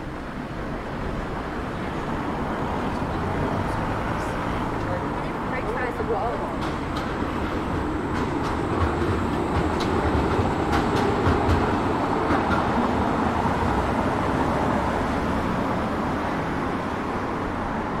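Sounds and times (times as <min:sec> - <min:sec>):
road traffic noise: 0:00.0 - 0:18.0
tram wheels rumbling on rails: 0:00.0 - 0:18.0.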